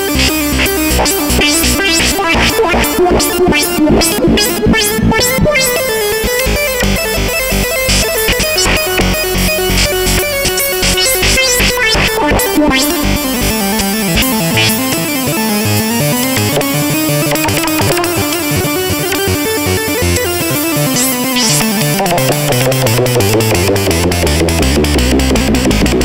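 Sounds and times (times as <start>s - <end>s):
synthesizer tones sliding in pitch: 0.0s - 15.5s, 20.8s - 21.9s
deep bass: 0.0s - 16.0s, 22.4s - 26.0s
fast clicking percussion: 7.6s - 13.0s.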